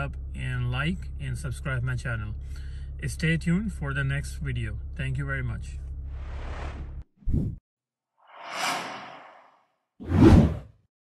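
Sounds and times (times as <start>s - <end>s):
soft airy whoosh: 8.3s - 10.5s
swish with heavy low hit: 8.4s - 10.6s.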